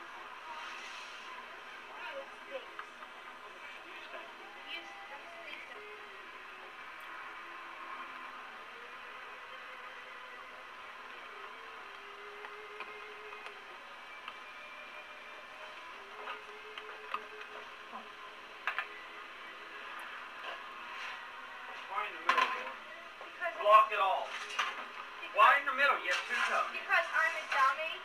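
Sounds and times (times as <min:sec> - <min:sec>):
faint indistinct voices: 0:00.0 - 0:28.0
kitchen background noise: 0:00.0 - 0:28.0.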